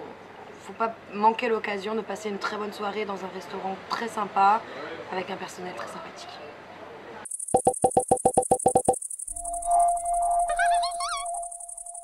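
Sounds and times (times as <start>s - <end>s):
rapid electronic beeps: 7.3s - 12.0s
steady high buzz: 7.3s - 12.0s.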